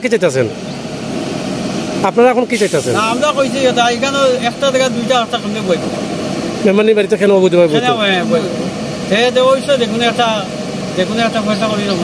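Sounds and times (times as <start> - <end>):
engine drone: 0.0 - 12.0
man's voice: 6.6 - 12.0.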